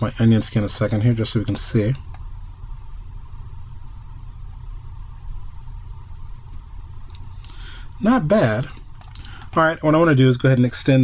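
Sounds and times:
low hum: 0:00.0 - 0:10.5
faint hiss: 0:00.0 - 0:11.0.

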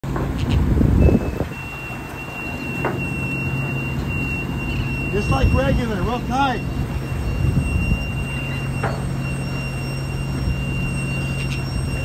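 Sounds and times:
boat engines droning: 0:00.0 - 0:12.0
high whine: 0:00.0 - 0:12.0
wind and rushing water: 0:00.0 - 0:12.0.

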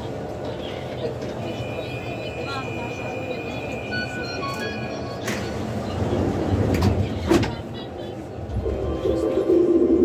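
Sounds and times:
metro train rumbling: 0:00.0 - 0:10.0.

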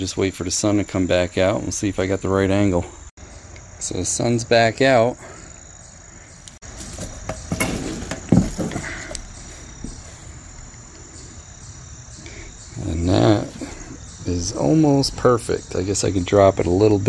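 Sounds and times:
insects chirring: 0:00.0 - 0:17.0
soft handling knocks: 0:06.6 - 0:10.8.

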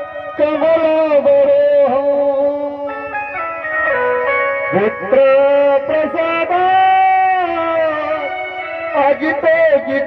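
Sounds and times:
organ-like keyboard: 0:00.0 - 0:10.0.

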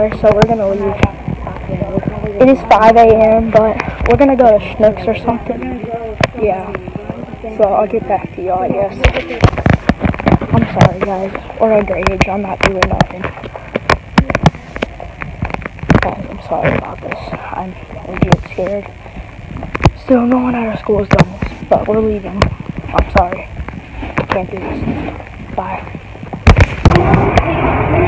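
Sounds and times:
phone microphone being bumped: 0:00.0 - 0:27.6.

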